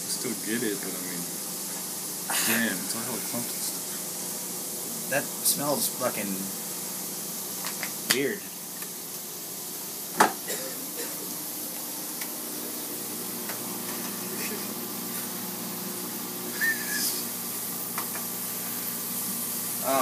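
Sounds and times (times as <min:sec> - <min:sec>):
food sizzling in a pan: 0:00.0 - 0:20.0.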